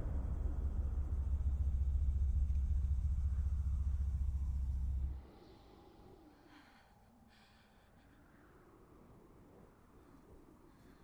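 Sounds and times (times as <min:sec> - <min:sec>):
steady deep rumble: 0:00.0 - 0:06.4.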